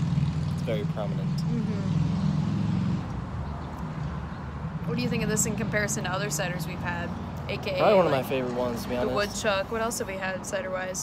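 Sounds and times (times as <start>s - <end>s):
road noise: 0.0s - 11.0s
vehicle engine hum: 0.0s - 11.0s.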